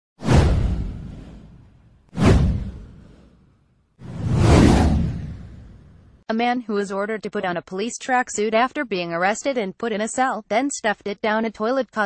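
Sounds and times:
whoosh sound effects: 0.2s - 3.4s, 4.0s - 6.1s.

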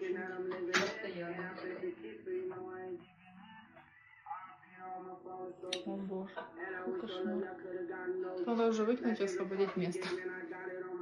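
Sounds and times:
faint speech: 0.0s - 11.0s.

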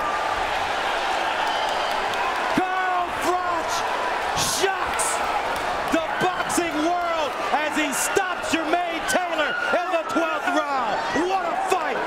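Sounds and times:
crowd shouting excitedly: 0.0s - 12.0s.

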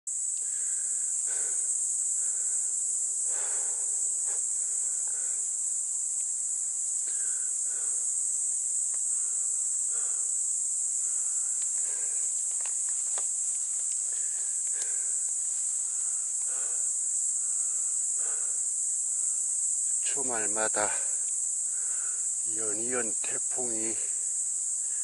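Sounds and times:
insects singing: 0.1s - 25.0s.

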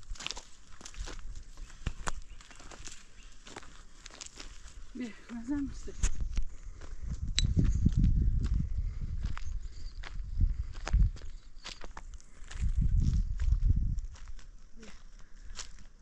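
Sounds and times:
footsteps on stony ground: 0.0s - 16.0s.

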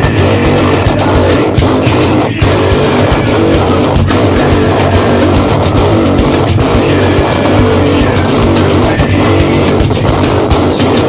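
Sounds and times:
distorted electric guitar riff: 0.0s - 11.0s
steady drum beat: 0.0s - 11.0s.

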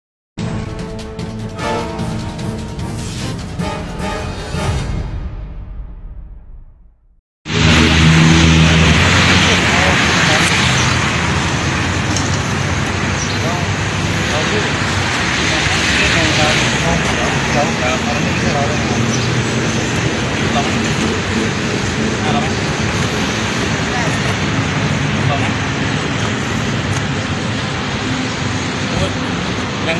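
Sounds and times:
loud outdoor traffic noise: 7.5s - 29.9s
people talking indistinctly: 11.8s - 26.5s.

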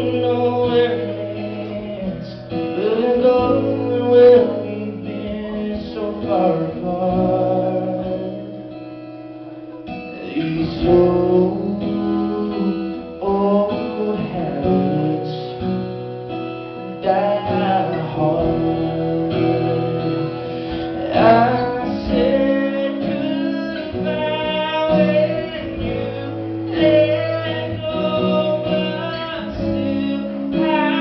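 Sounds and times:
man singing: 0.0s - 8.8s, 9.7s - 16.0s, 16.8s - 31.0s
strummed acoustic guitar: 0.0s - 31.0s.

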